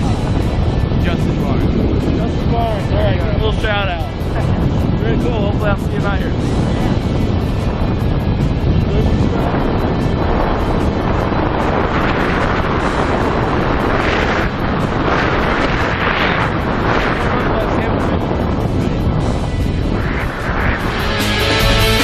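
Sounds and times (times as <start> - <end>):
wind rushing over microphone: 0.0 - 22.0.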